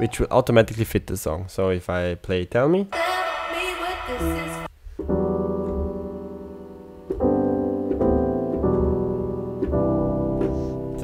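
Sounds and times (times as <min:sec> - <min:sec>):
piano chords: 0:02.9 - 0:11.0.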